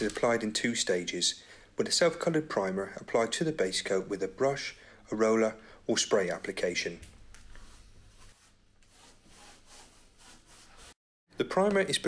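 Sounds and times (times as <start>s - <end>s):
hand tool scraping plaster: 7.6s - 11.0s.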